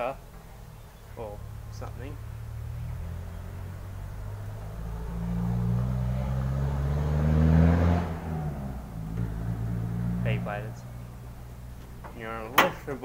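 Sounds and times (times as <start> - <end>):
vehicle driving past: 0.6 - 12.4.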